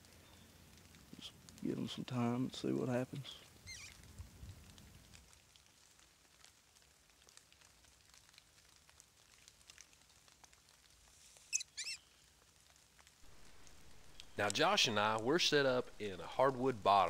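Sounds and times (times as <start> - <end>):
light rain on dry leaves: 0.0 - 17.0
bird chirps: 3.7 - 4.0, 11.5 - 12.2.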